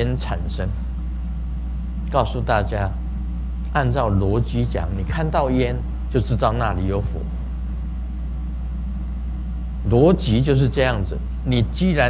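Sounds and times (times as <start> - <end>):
low hum and rumble: 0.0 - 12.0.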